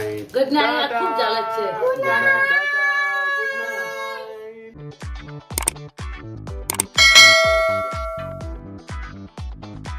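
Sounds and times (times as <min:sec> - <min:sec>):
background music with steady beat: 0:05.1 - 0:09.9
bright bell chime: 0:06.7 - 0:08.6.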